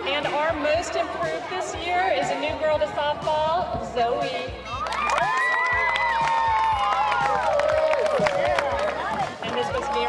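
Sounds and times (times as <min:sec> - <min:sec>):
girls cheering and screaming: 0:04.6 - 0:09.0.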